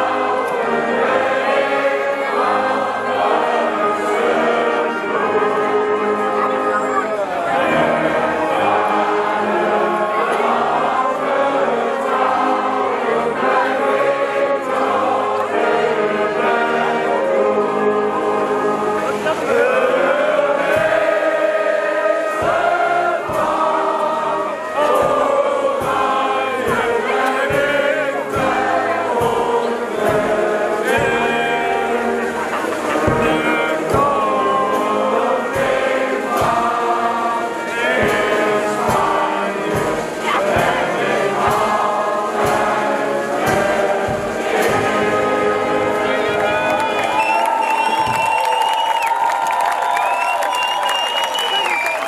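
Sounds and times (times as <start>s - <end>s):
crowd singing in chorus: 0.0s - 52.0s
street brass band playing: 0.0s - 52.0s
steady bass drum beat: 24.8s - 37.2s, 37.8s - 46.8s.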